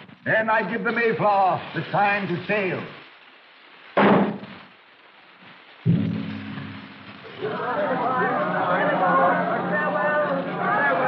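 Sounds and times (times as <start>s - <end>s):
signal gun shot: 5.9s - 7.4s.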